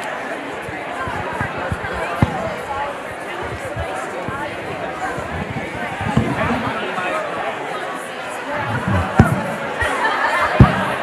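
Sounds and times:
crowd chatter: 0.0s - 11.0s
sharp thump: 0.7s - 6.9s, 8.6s - 9.8s, 10.6s - 11.0s.

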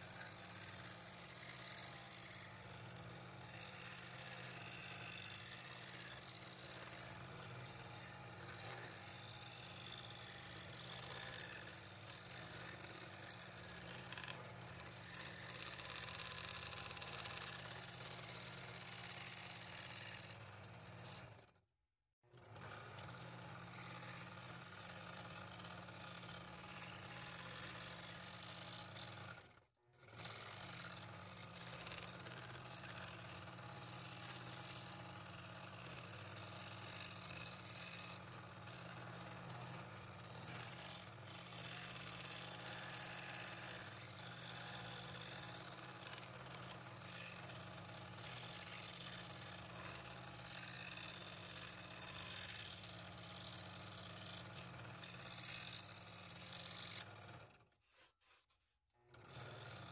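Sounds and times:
scroll saw cutting wood: 0.0s - 21.6s, 22.3s - 59.9s.

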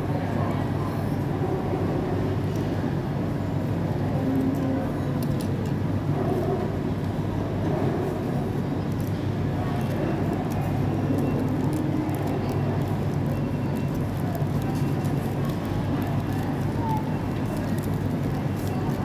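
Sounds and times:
indistinct chatter of diners: 0.0s - 19.0s.

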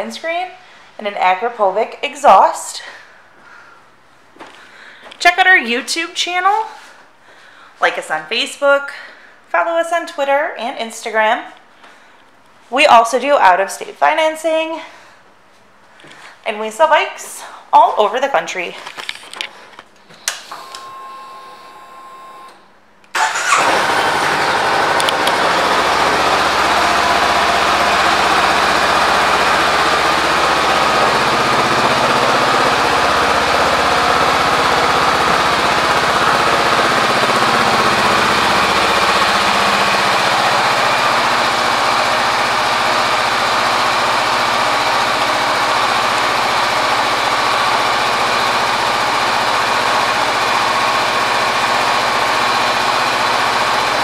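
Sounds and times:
motorcycle engine starting and idling: 23.1s - 54.0s.

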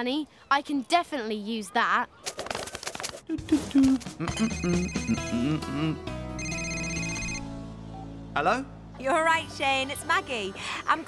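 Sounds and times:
phone trill ringtone: 4.3s - 5.4s, 6.4s - 7.4s.

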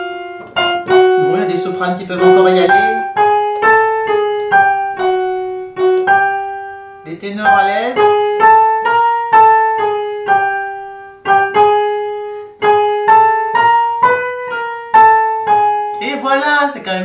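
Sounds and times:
electronic keyboard piano notes: 0.0s - 17.0s.

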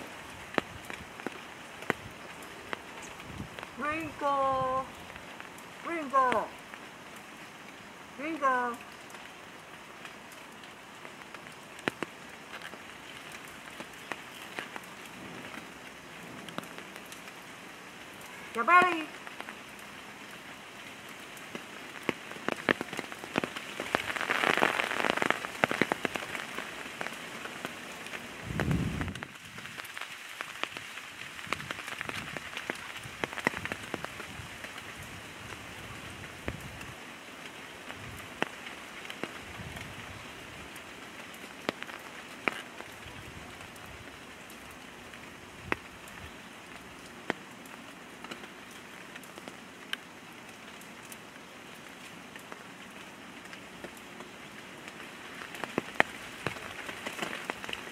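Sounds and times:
steady rain: 0.0s - 57.9s
sharp drip ticks: 10.0s - 17.4s, 18.1s - 28.2s, 40.7s - 57.9s.

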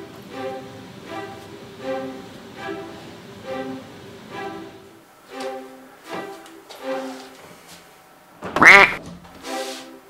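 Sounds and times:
animal-like call: 8.6s - 9.0s.

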